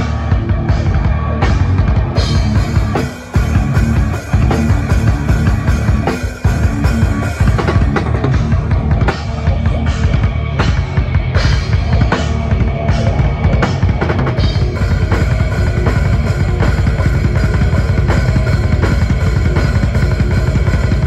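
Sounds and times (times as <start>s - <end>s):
drum kit: 0.0s - 21.0s
live rock band: 0.0s - 21.0s.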